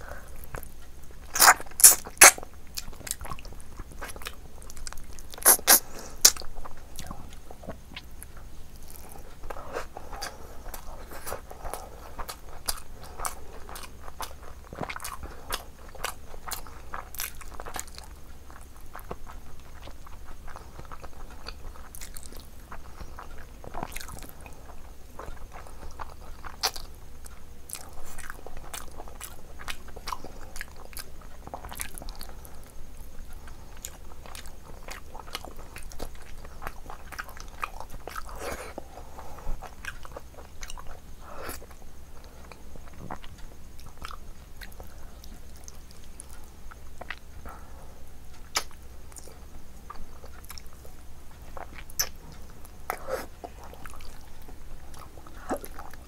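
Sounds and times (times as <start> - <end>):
person chewing with mouth clicks: 0.3 - 47.7, 48.3 - 56.0.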